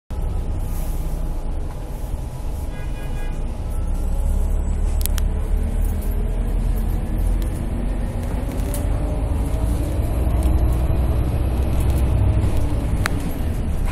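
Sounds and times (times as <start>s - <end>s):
bus rumbling inside cabin: 0.1s - 13.9s.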